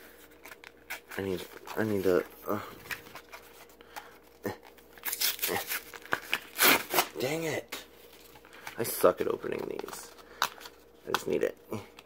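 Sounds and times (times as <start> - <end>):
blister pack tearing and crinkling: 4.5 - 7.3.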